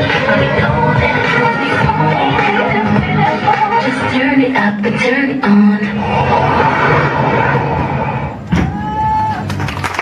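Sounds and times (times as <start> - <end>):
dance music: 0.0 - 8.4
crowd cheering: 8.4 - 10.0.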